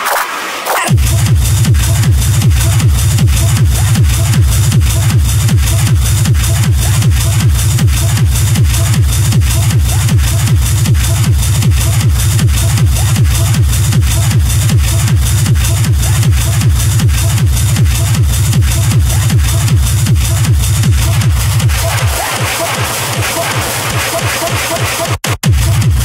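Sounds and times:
techno music with kick drum: 0.8 - 26.0.

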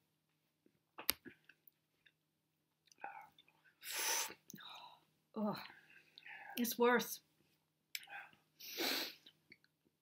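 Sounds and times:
breathy hiss of air: 3.8 - 4.4, 8.6 - 9.3.

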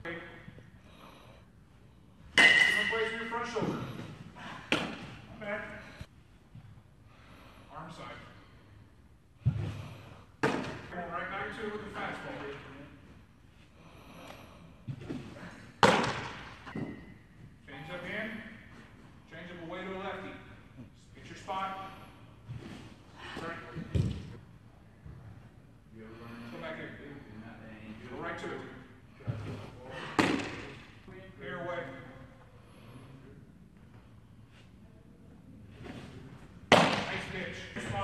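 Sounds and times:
baseball smacking target: 4.7 - 5.2, 10.4 - 10.9, 15.8 - 17.0, 30.1 - 30.9, 36.7 - 37.3.

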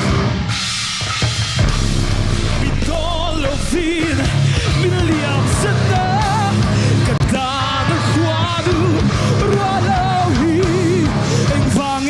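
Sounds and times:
drums and crashing cymbals: 0.0 - 12.0
heavy metal band playing live: 0.0 - 12.0
heavy low guitar note: 1.5 - 6.2.

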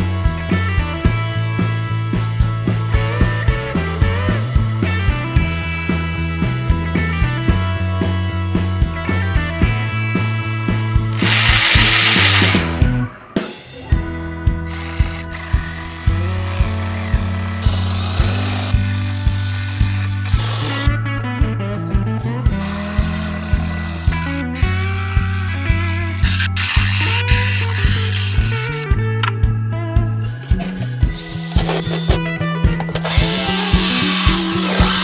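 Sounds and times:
background music with beat: 0.0 - 35.0
jigsaw cutting wood: 11.1 - 12.8, 16.1 - 20.9, 33.0 - 35.0.

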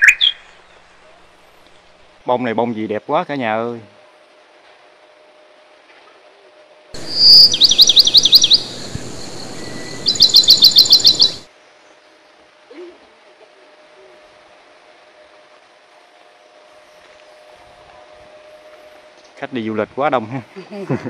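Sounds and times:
thin steady hum: 3.9 - 19.7
bird whistling falling notes: 7.0 - 11.5.

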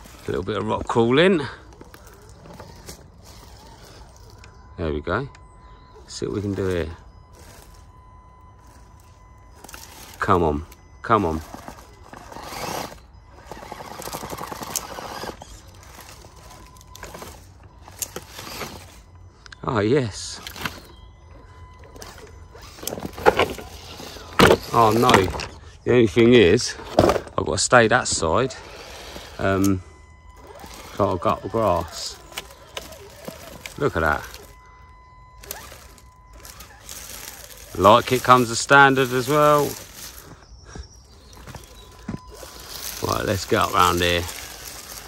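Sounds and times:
rc car motor and gearbox whining: 0.0 - 45.0.

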